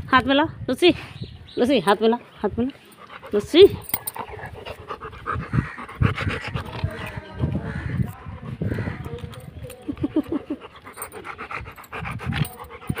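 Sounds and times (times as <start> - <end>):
dog panting: 2.8 - 13.0.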